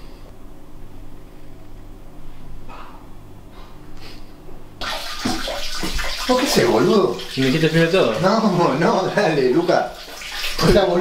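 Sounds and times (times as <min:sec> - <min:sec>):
running water hissing: 0:04.8 - 0:11.0.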